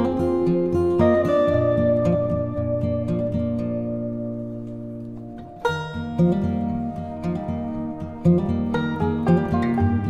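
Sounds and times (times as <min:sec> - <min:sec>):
plucked guitar music: 0:00.0 - 0:10.0.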